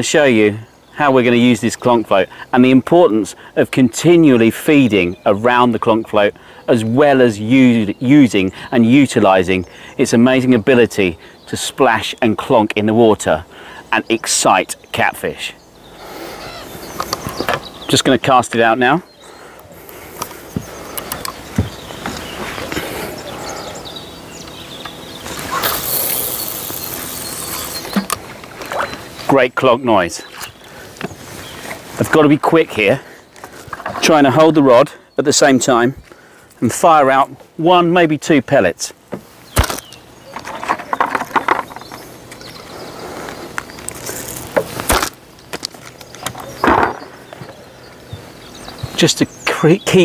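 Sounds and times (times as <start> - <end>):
fishing line hissing out: 25.3 - 28.1
sharp reel click: 25.4 - 28.1
fishing reel clicks: 25.5 - 28.0.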